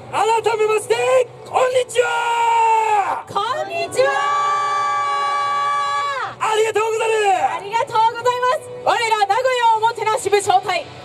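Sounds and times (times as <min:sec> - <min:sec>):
person shouting a greeting: 0:01.6 - 0:07.6.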